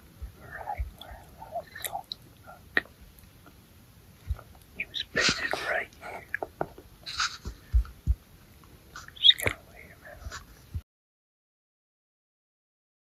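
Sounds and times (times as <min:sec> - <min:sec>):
man whispering: 0:00.3 - 0:02.9, 0:04.4 - 0:06.5, 0:09.0 - 0:10.6.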